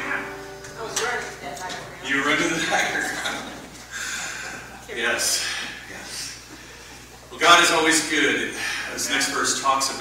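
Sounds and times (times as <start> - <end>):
acoustic guitar chord: 0.0 - 3.7.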